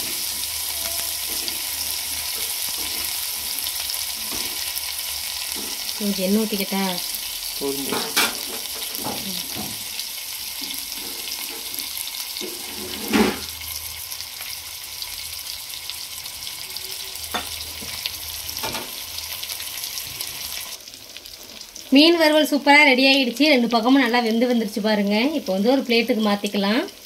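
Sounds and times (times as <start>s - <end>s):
fish sizzling in oil on griddle: 0.0s - 27.0s.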